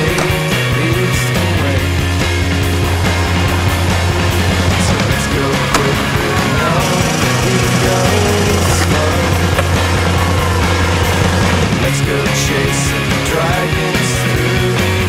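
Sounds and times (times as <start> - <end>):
sharp skateboard clack: 0.0 - 0.7, 2.8 - 11.9
skateboard wheels on stone: 0.0 - 14.8
rock music with bass: 0.0 - 15.0.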